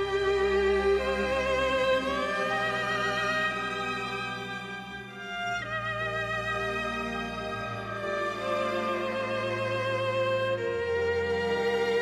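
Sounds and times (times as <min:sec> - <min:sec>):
solo violin with vibrato: 0:00.0 - 0:12.0
string orchestra accompaniment: 0:00.0 - 0:12.0.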